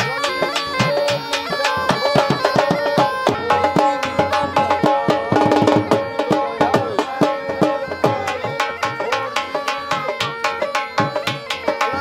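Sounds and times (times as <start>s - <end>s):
hand drum strokes: 0.0s - 12.0s
reed wind instrument melody: 0.0s - 12.0s.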